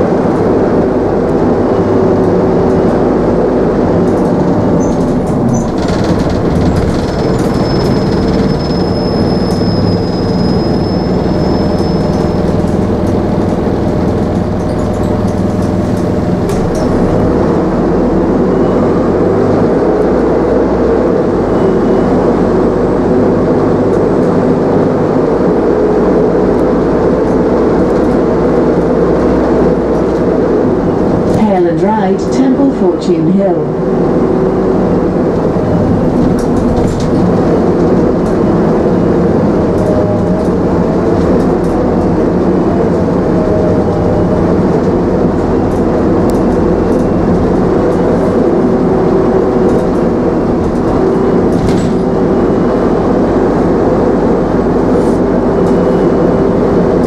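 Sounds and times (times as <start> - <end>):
bus engine drone: 0.0 - 57.0
tyre and road noise: 0.0 - 57.0
body knocks and rattles: 4.1 - 9.4.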